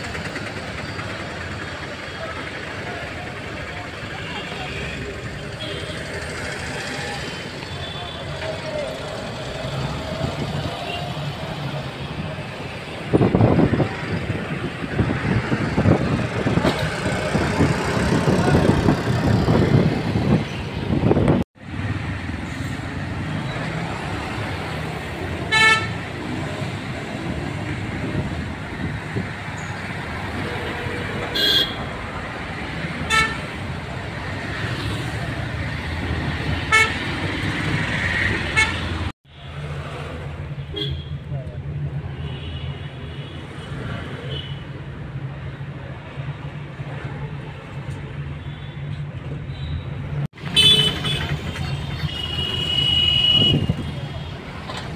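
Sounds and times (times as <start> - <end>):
city street traffic: 0.0 - 54.9
car horn toots: 50.4 - 51.4, 52.0 - 53.8.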